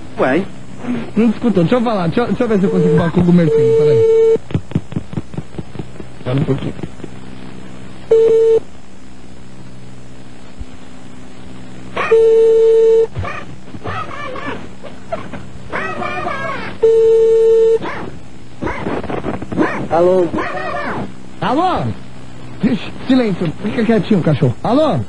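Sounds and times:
telephone ringback tone: 2.7 - 4.4, 8.1 - 8.6, 12.1 - 13.1, 16.8 - 17.8
dog barking: 12.0 - 12.3, 13.2 - 16.7, 17.8 - 21.1.

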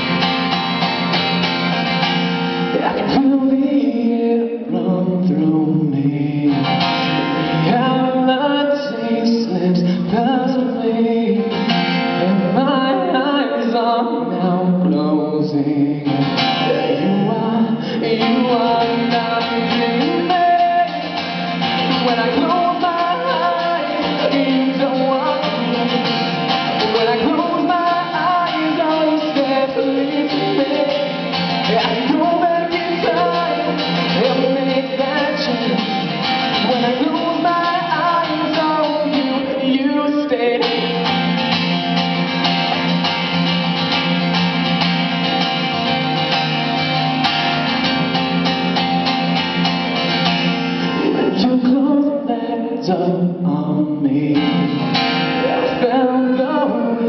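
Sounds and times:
guitar accompaniment: 0.0 - 57.0
person singing: 2.6 - 41.4, 50.8 - 57.0.

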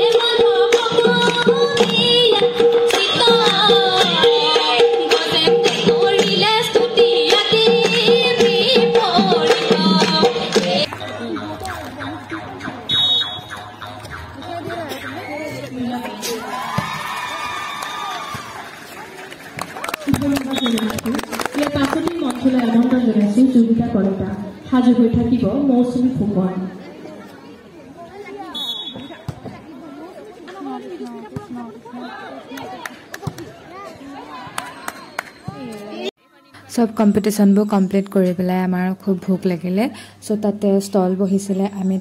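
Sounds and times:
voices chattering and calling out: 10.6 - 42.0
players and onlookers calling out: 10.9 - 19.4
referee's whistle blast: 12.9 - 13.6, 28.5 - 29.3.

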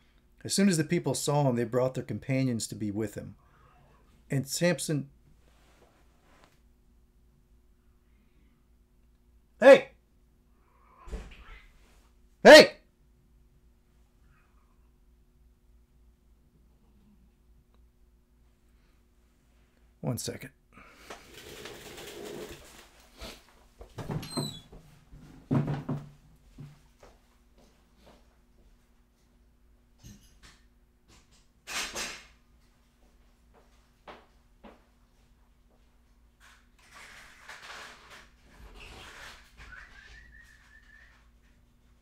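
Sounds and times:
cats fighting: 21.2 - 23.4
knocks and thumps of movement: 23.8 - 26.8.

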